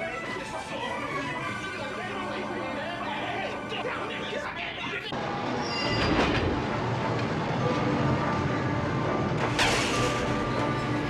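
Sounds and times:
subway train rumble: 0:00.0 - 0:11.0
high squeal: 0:05.5 - 0:06.3.

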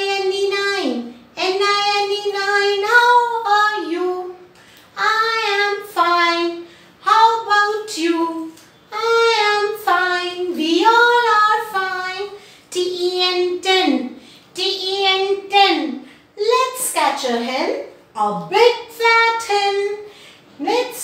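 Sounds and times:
woman singing unaccompanied: 0:00.0 - 0:16.0.

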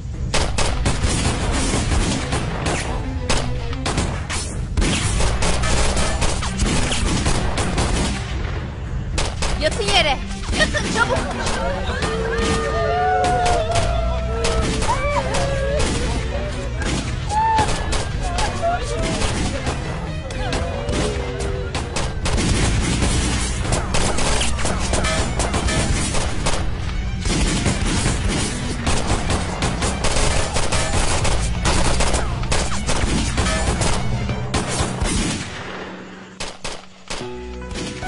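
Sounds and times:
rapid rifle gunfire: 0:04.8 - 0:08.4, 0:09.1 - 0:11.7, 0:21.8 - 0:37.3.

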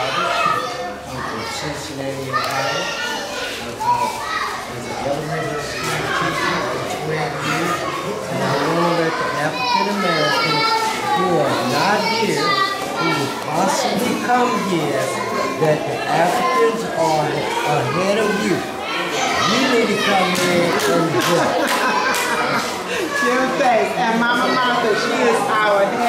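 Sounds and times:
adults talking: 0:00.0 - 0:26.0
children chattering and calling out: 0:00.0 - 0:26.0.

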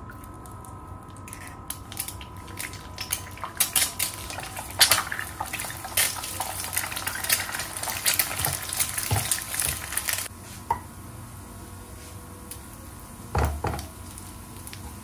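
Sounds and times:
egg sizzling in oil: 0:01.2 - 0:15.0.

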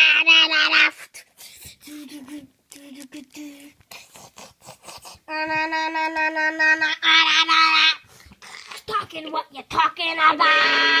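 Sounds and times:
loud high vocal note: 0:10.3 - 0:11.0.

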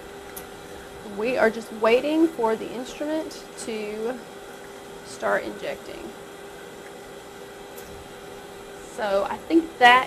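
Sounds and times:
instrument pumps and fans hissing: 0:00.0 - 0:10.0.

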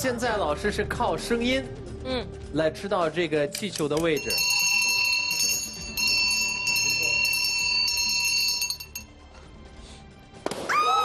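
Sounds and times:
brass hand bell ringing: 0:04.2 - 0:09.1.

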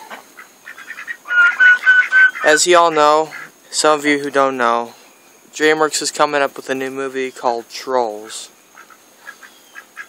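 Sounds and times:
bird calling high notes: 0:01.1 - 0:03.5.

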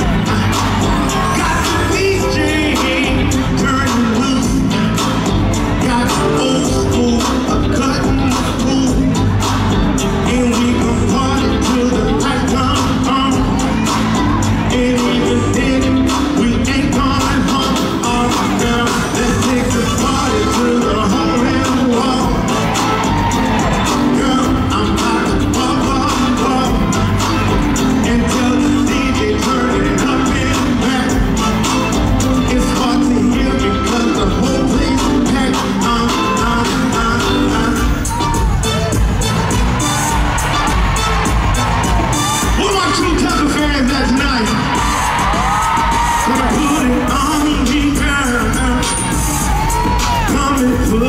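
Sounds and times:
man singing into microphone: 0:00.0 - 0:38.6, 0:42.5 - 0:51.0
amplified soul backing music: 0:00.0 - 0:51.0.

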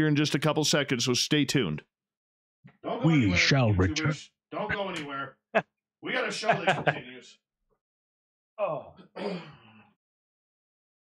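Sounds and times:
man clearing his throat: 0:09.0 - 0:09.7.

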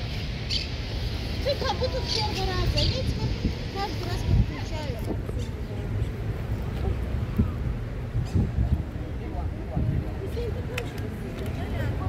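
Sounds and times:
street noise: 0:00.0 - 0:12.0
faint crowd noise: 0:01.3 - 0:12.0
wind buffeting microphone: 0:01.4 - 0:12.0.

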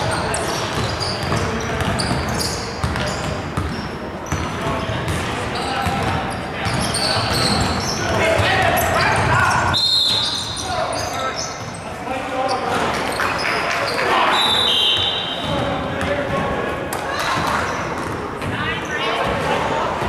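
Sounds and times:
sneakers squeaking: 0:00.0 - 0:16.4, 0:17.1 - 0:20.0
players' voices and calls: 0:00.0 - 0:20.0.

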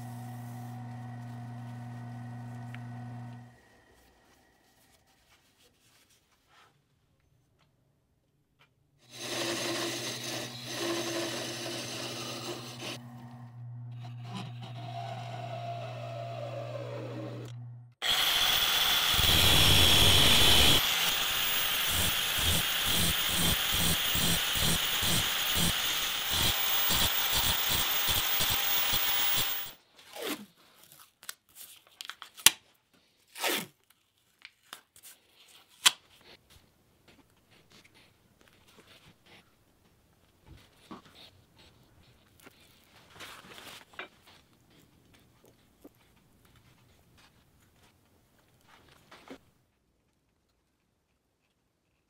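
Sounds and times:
wood lathe motor humming: 0:00.0 - 0:03.7, 0:09.1 - 0:29.8
harsh pulsing grinding: 0:12.1 - 0:29.8.

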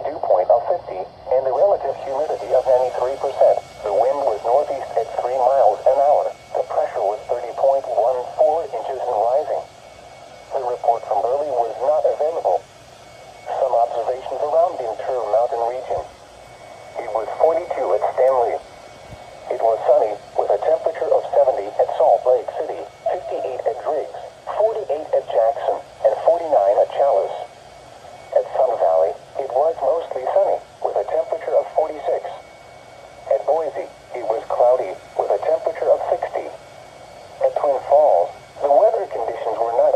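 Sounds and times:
automated voice through small speaker: 0:00.0 - 0:09.6, 0:10.5 - 0:12.6, 0:13.5 - 0:16.1, 0:17.0 - 0:18.6, 0:19.5 - 0:27.5, 0:28.3 - 0:32.4, 0:33.3 - 0:36.6, 0:37.4 - 0:39.9.

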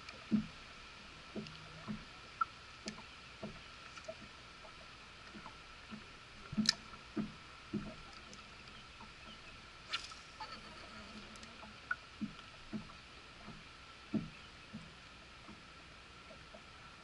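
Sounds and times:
water slapping boat hull: 0:00.0 - 0:17.0.

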